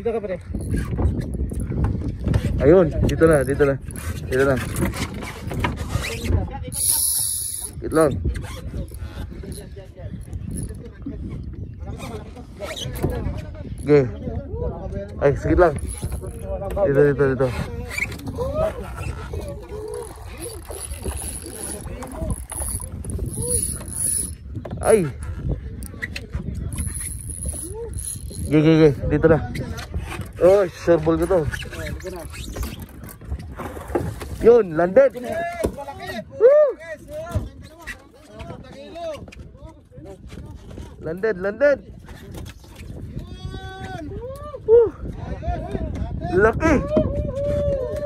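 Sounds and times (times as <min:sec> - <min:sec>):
people talking and calling out: 0:06.0 - 0:48.0
fishing reel gears whining: 0:06.7 - 0:07.8, 0:15.8 - 0:16.4, 0:19.8 - 0:24.4, 0:26.7 - 0:28.6.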